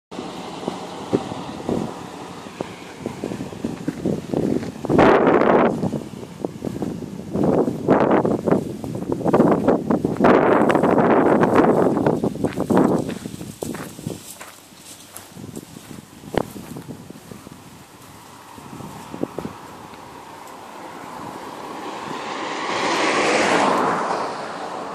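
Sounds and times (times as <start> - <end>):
leaves rustling: 0.2 - 24.0
wind buffeting microphone: 0.2 - 24.9.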